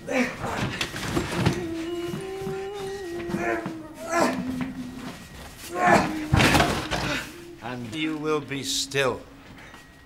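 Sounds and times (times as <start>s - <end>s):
low hum: 0.8s - 10.0s
man grunting: 3.3s - 4.6s, 5.7s - 7.8s.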